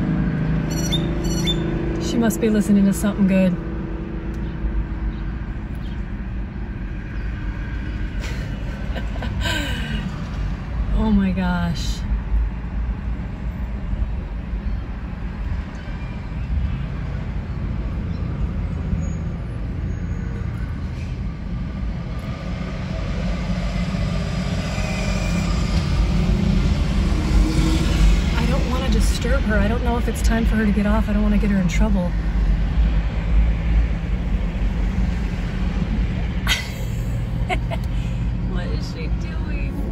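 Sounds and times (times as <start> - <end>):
road traffic: 0.0 - 39.9
vehicle engines rumbling: 0.0 - 39.9
car passing close: 20.6 - 39.9.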